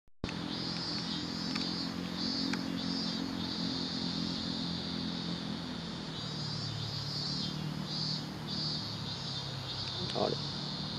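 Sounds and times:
engine humming: 0.2s - 10.9s
insects shrilling: 0.3s - 10.9s.

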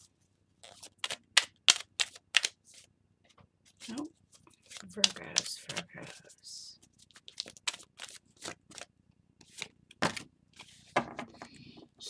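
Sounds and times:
cards being shuffled: 0.6s - 2.9s, 3.7s - 6.3s, 7.0s - 11.0s.

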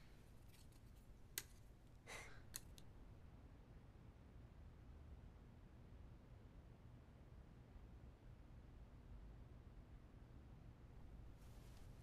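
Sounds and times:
playing card set on table: 0.0s - 3.0s.

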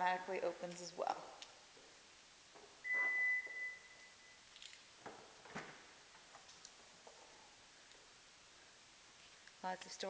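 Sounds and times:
high electronic warning beep: 2.8s - 4.4s.

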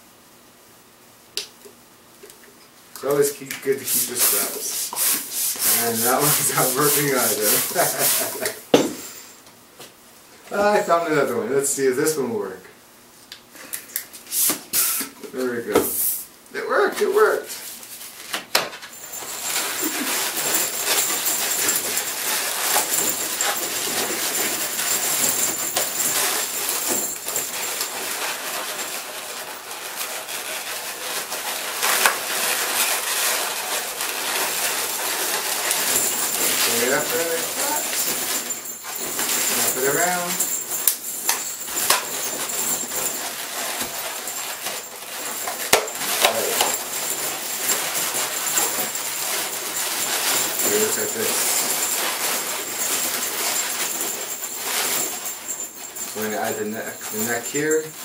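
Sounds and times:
balloons rubbing and squeaking: 4.0s - 8.5s, 19.1s - 40.4s.

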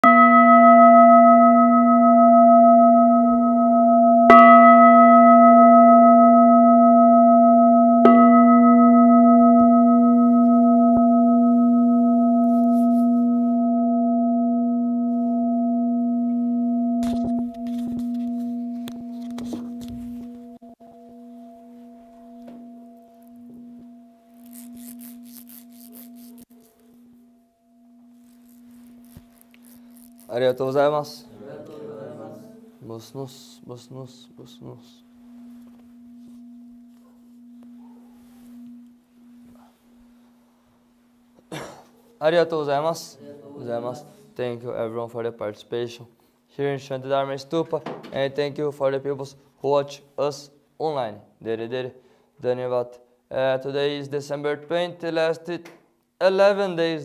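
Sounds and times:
bowl bell ringing: 0.0s - 31.3s, 32.8s - 41.3s.

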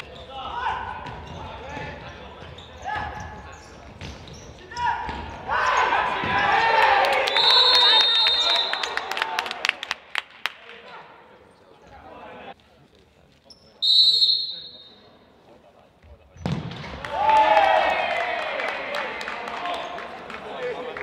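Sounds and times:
players' voices shouting: 4.6s - 9.6s
referee's whistle blast: 7.3s - 9.1s, 13.8s - 15.1s.

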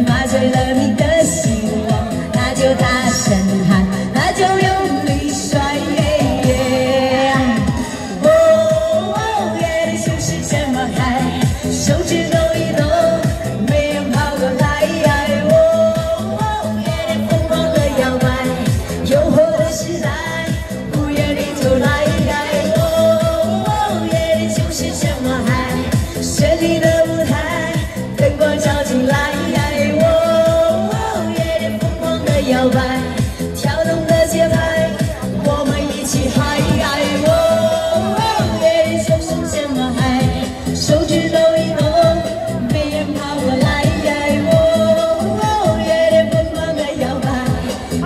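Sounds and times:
pop backing track: 0.0s - 48.0s
woman singing into a microphone: 0.0s - 48.0s.

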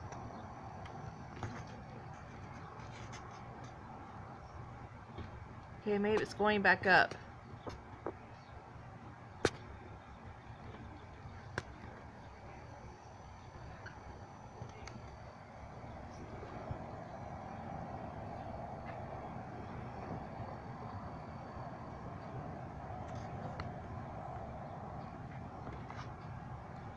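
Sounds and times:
low rumbling background noise: 0.0s - 26.9s.

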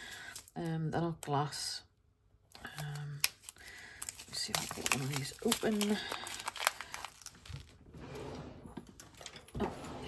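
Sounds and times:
plastic bag crinkling: 0.0s - 0.6s, 2.6s - 7.9s.

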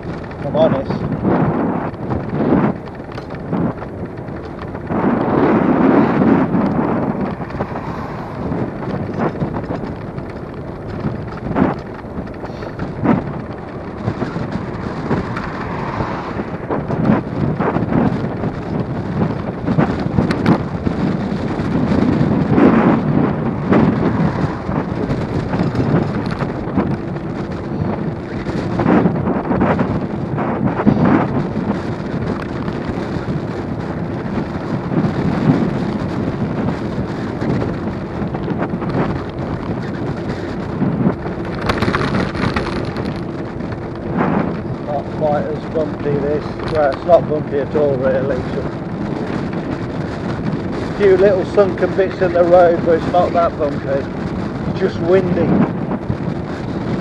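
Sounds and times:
wheels rumbling on tarmac: 0.0s - 57.0s
wind buffeting microphone: 0.0s - 57.0s.

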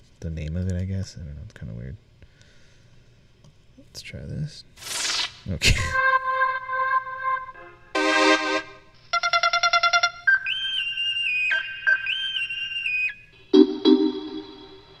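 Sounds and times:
synthesized loop: 13.4s - 15.0s.

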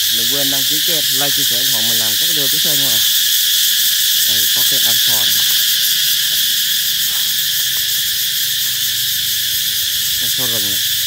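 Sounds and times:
cicadas buzzing: 0.0s - 11.0s.

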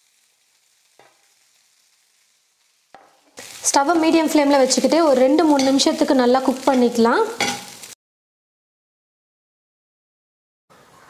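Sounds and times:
spatula scraping in a pan: 0.1s - 8.0s.

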